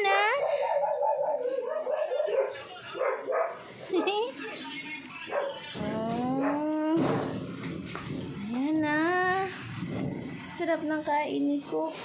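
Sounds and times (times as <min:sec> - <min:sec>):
dog whining and howling: 0:00.4 - 0:03.5.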